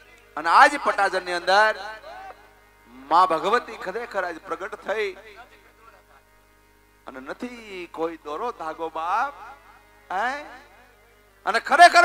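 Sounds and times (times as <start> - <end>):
man speaking into a microphone: 0.0 - 6.2, 7.1 - 10.8, 11.4 - 12.0
electrical mains hum: 0.0 - 12.0.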